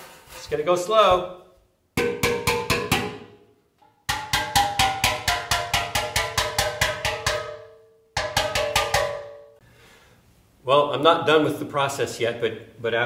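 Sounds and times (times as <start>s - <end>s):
hammer striking steel pan: 2.0s - 9.6s.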